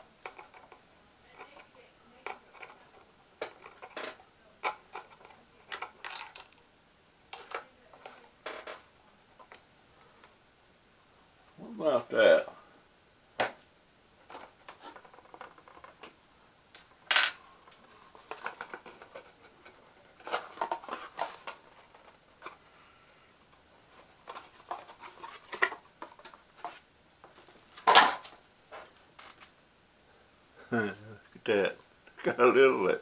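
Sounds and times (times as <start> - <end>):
packaging clicking and rustling: 3.4 - 6.6.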